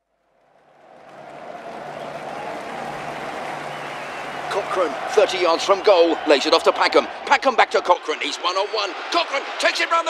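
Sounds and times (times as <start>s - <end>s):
football crowd noise: 0.4s - 10.0s.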